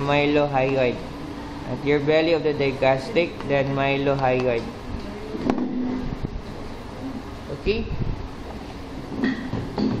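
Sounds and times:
low rumbling: 0:04.7 - 0:09.1.

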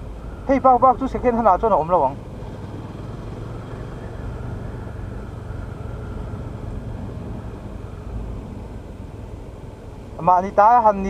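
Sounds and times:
road and wind noise: 0:00.0 - 0:11.0
motorcycle engine running: 0:02.2 - 0:08.7.

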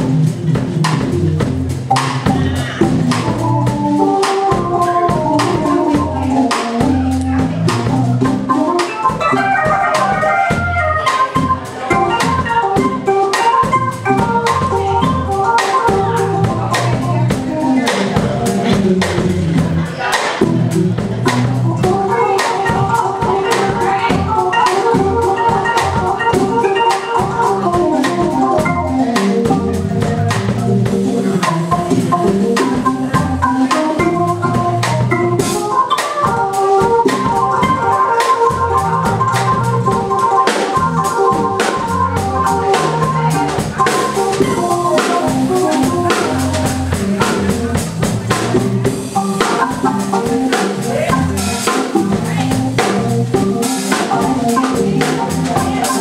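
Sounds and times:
drum kit beat: 0:00.0 - 0:56.0
organ keyboard chords: 0:00.0 - 0:56.0.

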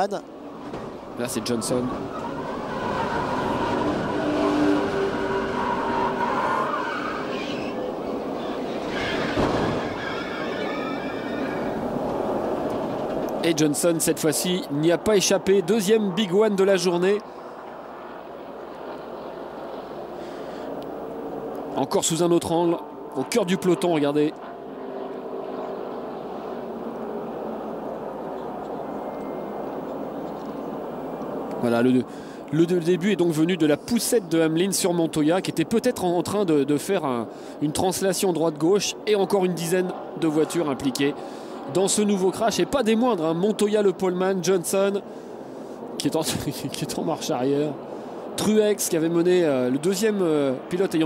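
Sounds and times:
car engine and wind noise: 0:00.0 - 0:33.2
whining tones: 0:00.6 - 0:13.3, 0:17.5 - 0:31.6.

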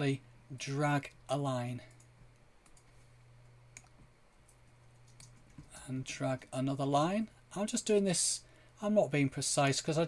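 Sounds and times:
low steady hum: 0:00.0 - 0:10.0
computer mouse clicks: 0:01.9 - 0:03.0, 0:03.7 - 0:05.7.

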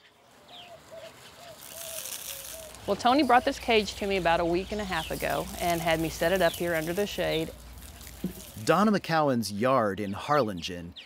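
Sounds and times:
high falling bird chirp: 0:00.0 - 0:11.0
faint high hiss: 0:00.5 - 0:09.0.

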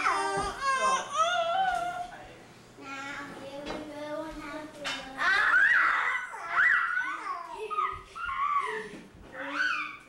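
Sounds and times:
small child's high vocal calls: 0:09.4 - 0:10.0.

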